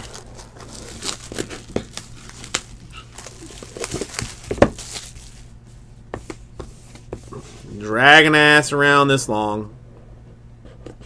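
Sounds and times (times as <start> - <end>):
plastic wrap crinkling and tearing: 0.0 - 5.6.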